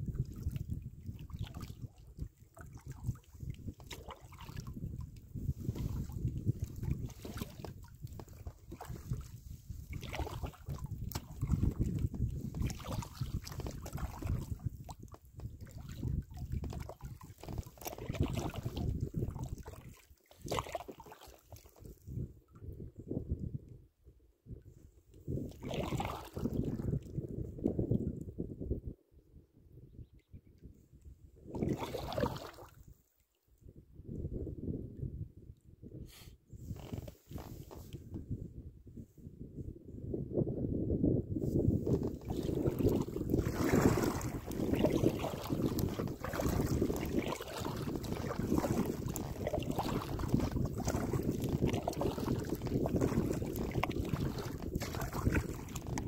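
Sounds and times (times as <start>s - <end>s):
wind buffeting microphone: 0.0s - 20.6s, 21.8s - 33.0s, 33.7s - 56.0s
water sloshing around raft: 0.0s - 22.7s, 25.3s - 27.1s, 31.5s - 33.4s, 36.7s - 38.0s, 41.7s - 56.0s.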